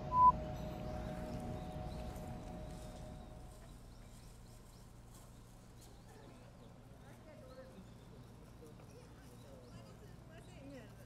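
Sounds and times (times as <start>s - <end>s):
short electronic beep: 0.0s - 0.6s
faint steady hum: 0.0s - 5.6s.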